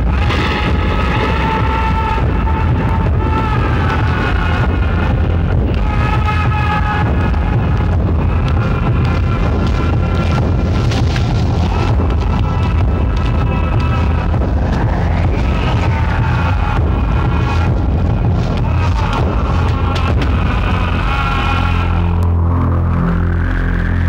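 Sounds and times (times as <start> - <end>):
dramatic film score drone: 0.0 - 24.0.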